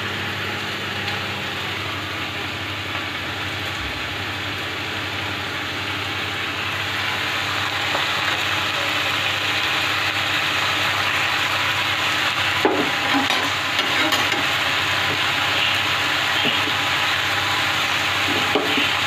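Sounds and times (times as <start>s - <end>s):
low machine hum: 0.0s - 19.0s
vegetables sizzling in a pan: 0.0s - 19.0s.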